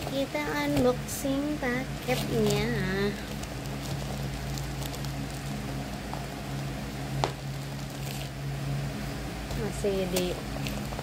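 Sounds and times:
plastic wrapping rustling: 0.0 - 8.4, 9.5 - 11.0.

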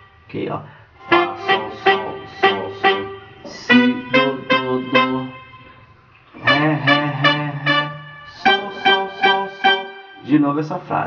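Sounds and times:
electronic keyboard chords: 1.0 - 10.5.

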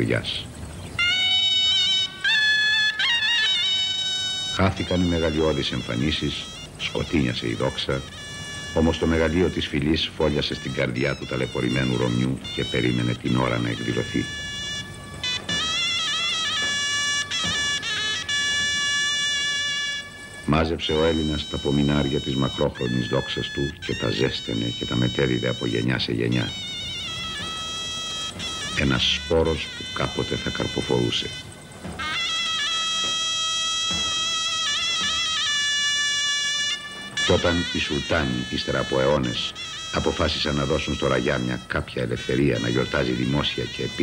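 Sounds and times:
shrill reedy folk wind instrument: 0.0 - 44.0
soft low drum beats: 15.2 - 18.0, 26.3 - 32.3, 33.8 - 35.3.

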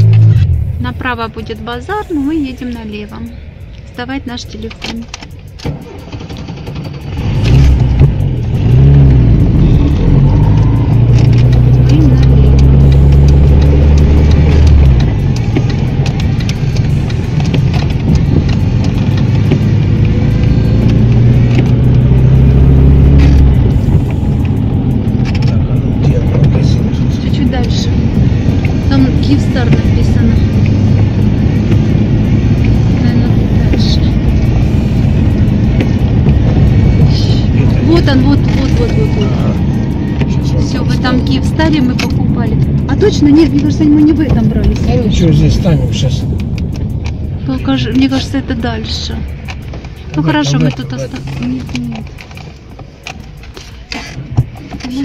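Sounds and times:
car engine drone: 0.0 - 55.0
tyre noise on wet road: 4.4 - 55.0.

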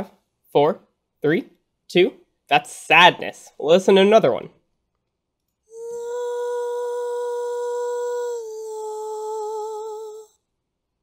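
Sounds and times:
person singing wordless notes: 5.7 - 10.4.

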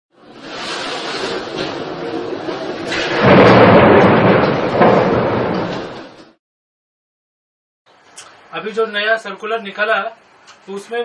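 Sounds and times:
waves crashing against ship: 0.2 - 6.2.

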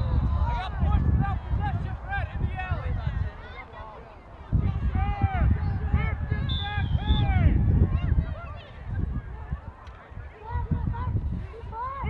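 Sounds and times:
distant shouts: 0.0 - 8.8
wind rumble on microphone: 0.0 - 12.0.

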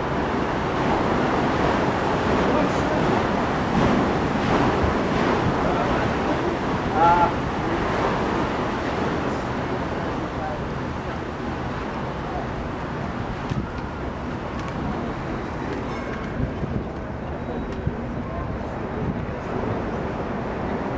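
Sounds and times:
wind buffeting microphone: 0.0 - 20.9.

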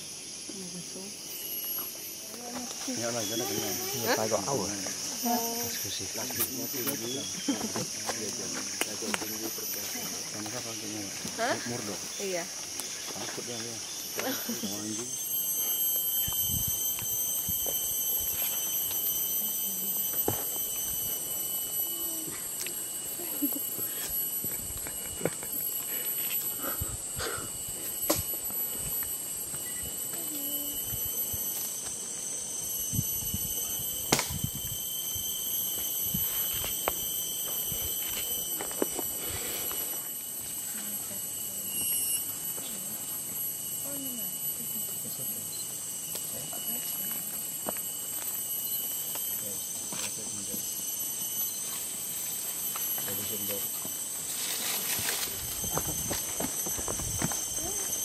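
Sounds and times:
high-pitched insect chorus: 0.0 - 58.0.

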